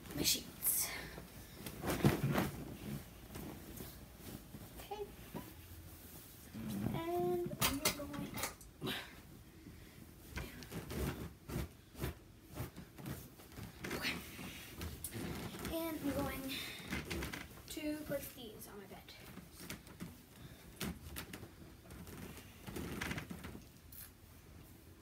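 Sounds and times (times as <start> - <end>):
sheets rustling and flapping: 1.1 - 8.2.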